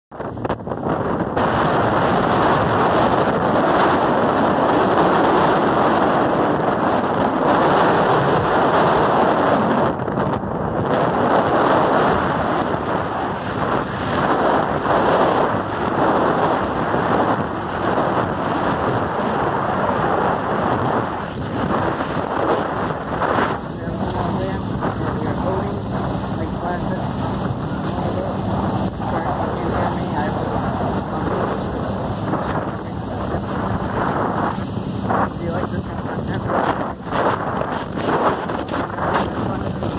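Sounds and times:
water rushing along hull: 0:00.1 - 0:39.9
wind buffeting microphone: 0:00.1 - 0:39.9.

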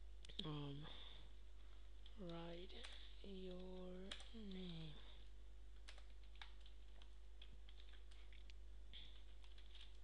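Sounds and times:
low electrical hum: 0:00.0 - 0:10.0
keyboard keystroke clicks: 0:02.2 - 0:04.9, 0:05.8 - 0:10.0.

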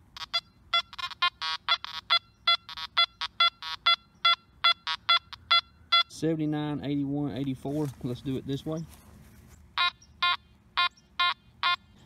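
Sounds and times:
metal detector rapid beeps: 0:00.1 - 0:06.2, 0:09.8 - 0:12.0.

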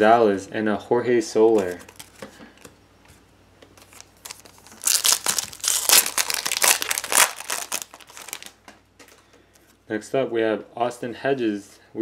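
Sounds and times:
cards rustling and clicking: 0:01.4 - 0:09.2
foil pack crinkling: 0:01.5 - 0:02.3, 0:03.8 - 0:08.7.

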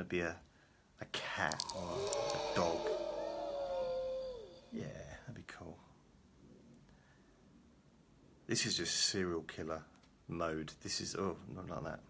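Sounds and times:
man imitating cat meow: 0:01.4 - 0:05.0.

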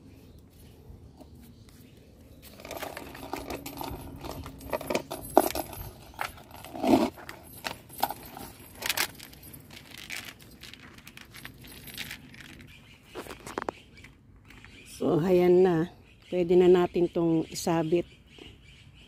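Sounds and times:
metal chains jingling: 0:02.4 - 0:13.0
chain knocks: 0:02.5 - 0:12.8.

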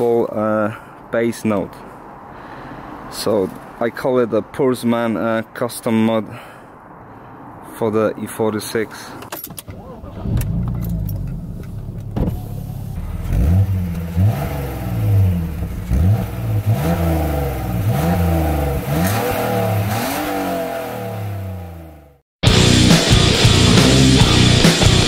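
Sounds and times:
car engine starting and idling: 0:09.3 - 0:25.0
engine revving in throttle blips: 0:10.0 - 0:25.0.

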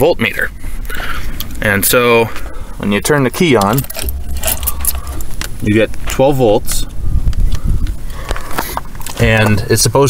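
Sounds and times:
clicks and rustles: 0:03.0 - 0:06.2
camera handling rumble: 0:03.5 - 0:06.2.

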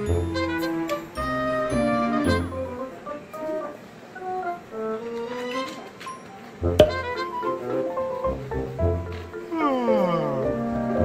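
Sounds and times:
background music: 0:00.0 - 0:11.0.

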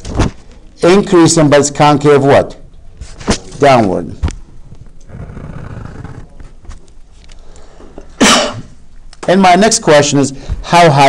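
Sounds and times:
loud sneeze: 0:08.2 - 0:08.8.

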